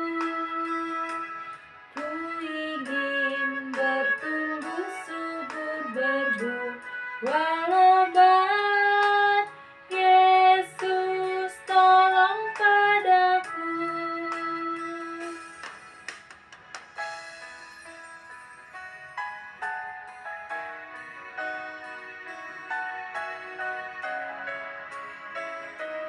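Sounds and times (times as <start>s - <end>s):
woman singing a hymn: 0.0s - 1.2s, 2.0s - 15.4s
instrumental backing: 0.0s - 26.0s.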